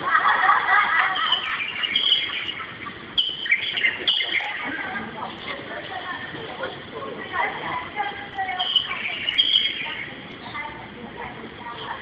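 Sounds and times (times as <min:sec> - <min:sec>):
faint background chatter: 0:00.0 - 0:12.0
birds chirping: 0:00.7 - 0:05.6, 0:08.2 - 0:10.8.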